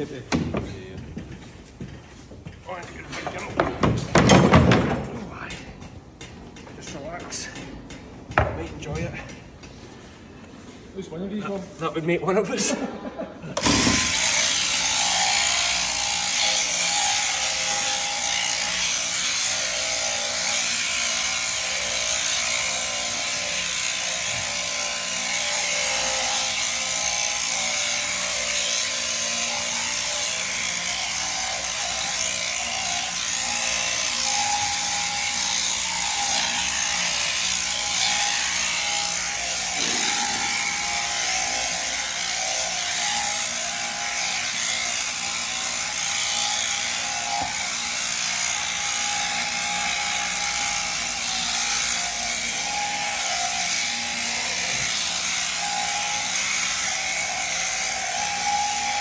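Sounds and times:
shearing handpiece humming: 12.8 - 59.0
cutter clipping fleece: 13.6 - 59.0.

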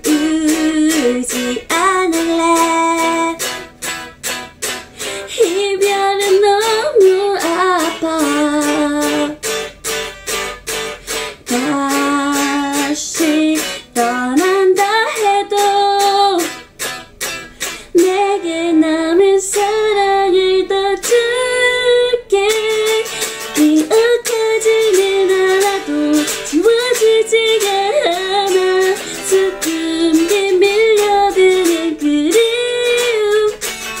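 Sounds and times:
woman singing a ballad: 0.0 - 3.7, 5.0 - 9.4, 11.4 - 16.6, 17.9 - 33.7
strummed guitar: 0.0 - 34.0.

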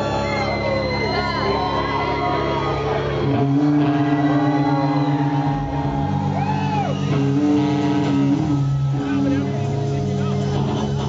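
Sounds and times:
crowd whooping and cheering: 0.0 - 11.0
electric guitar droning chord: 2.1 - 11.0.

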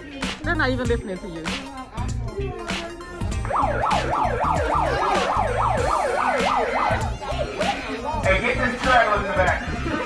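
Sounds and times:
background music with a beat: 0.0 - 10.0
megaphone siren wailing: 3.4 - 8.0.

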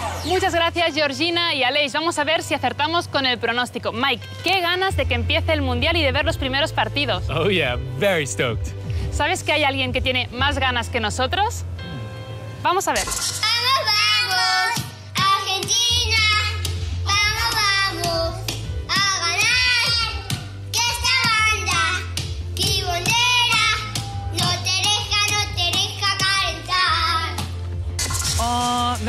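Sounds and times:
background music: 0.0 - 29.0
child singing: 13.4 - 27.5.

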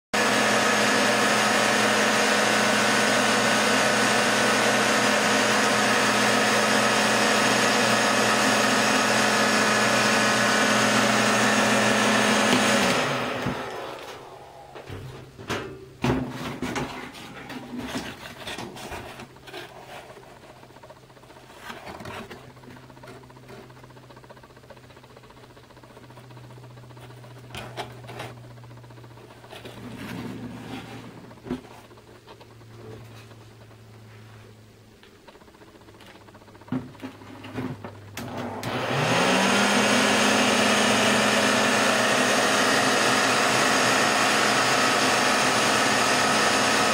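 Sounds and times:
hair dryer blowing: 0.2 - 15.4, 38.1 - 46.9.

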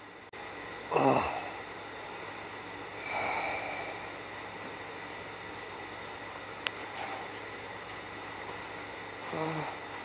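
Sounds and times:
faint hum: 0.0 - 10.0
radio static hiss: 0.8 - 10.0.

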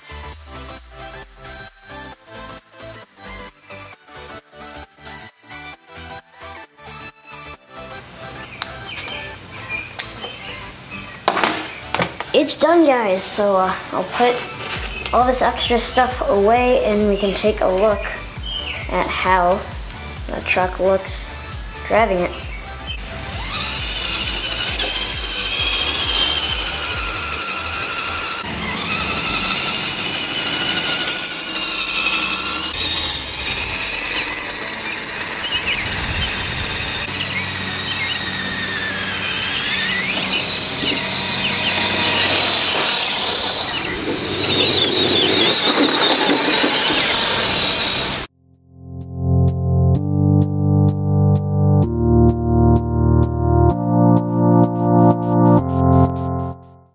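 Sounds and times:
background music: 0.0 - 28.9, 48.9 - 56.9
electric motor and gears whining: 13.4 - 19.0, 19.7 - 48.3
synth music with steady beat: 21.3 - 28.4, 48.8 - 56.9.

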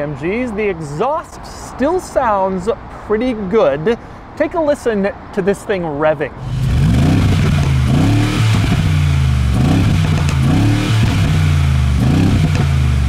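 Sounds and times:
car engine idling: 6.4 - 13.0
car engine revving: 6.4 - 13.0.

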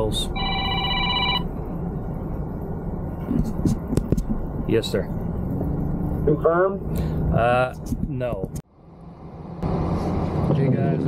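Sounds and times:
electronic ringtone: 0.4 - 1.5.

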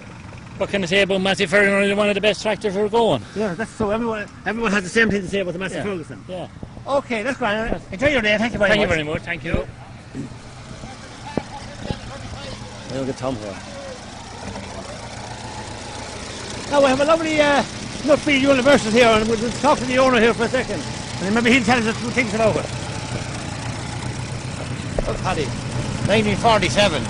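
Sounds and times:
tractor engine running: 0.0 - 27.0.

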